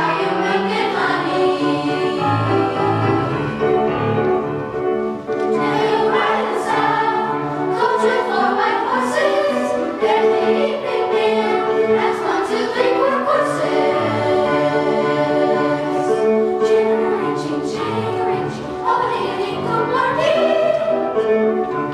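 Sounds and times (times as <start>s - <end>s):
children's choir singing: 0.0s - 21.9s.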